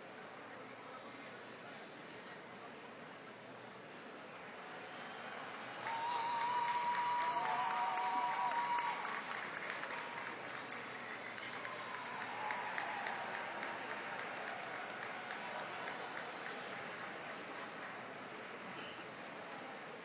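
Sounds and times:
audience applauding: 0:05.0 - 0:18.4
people whooping: 0:05.4 - 0:10.2, 0:11.4 - 0:16.2.

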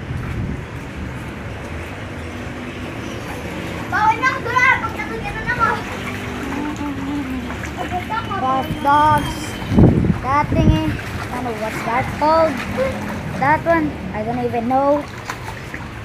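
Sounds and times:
children shouting and squealing: 0:03.9 - 0:11.0, 0:12.3 - 0:13.2.

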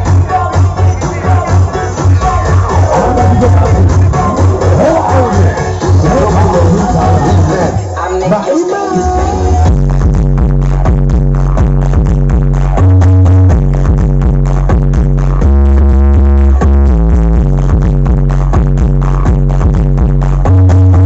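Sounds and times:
electronic dance music: 0:00.0 - 0:21.0.

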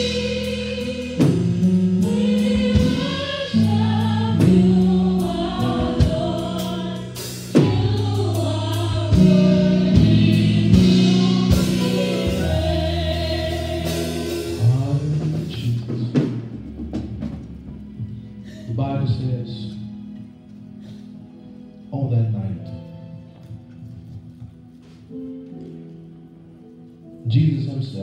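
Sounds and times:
gospel singing over chords: 0:00.0 - 0:23.5.

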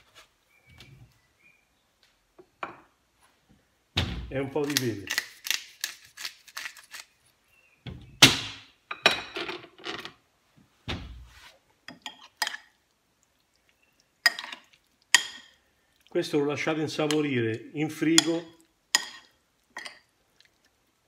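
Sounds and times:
tomatoes being stirred: 0:04.5 - 0:07.3, 0:11.4 - 0:21.0
pepper grinder clicking: 0:04.6 - 0:07.1.

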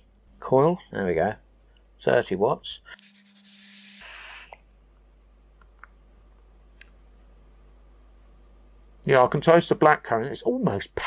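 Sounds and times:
low room noise: 0:00.0 - 0:11.0
e-cigarette hiss: 0:03.0 - 0:04.2.

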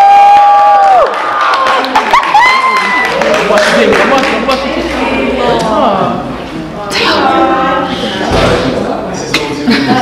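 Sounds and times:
crowd cheering: 0:00.0 - 0:04.6.

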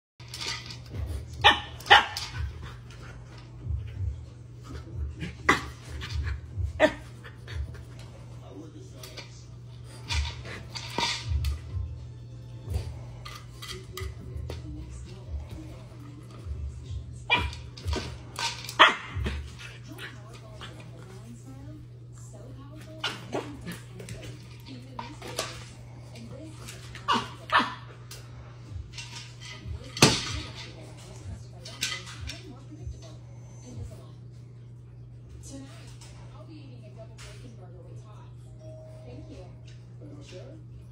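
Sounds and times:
puppy barking: 0:01.4 - 0:02.5, 0:18.8 - 0:19.4, 0:27.0 - 0:27.8.

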